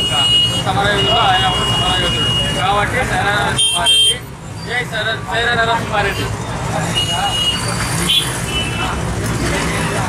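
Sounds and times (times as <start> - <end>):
motorcycle and vehicle engines: 0.0 - 10.0.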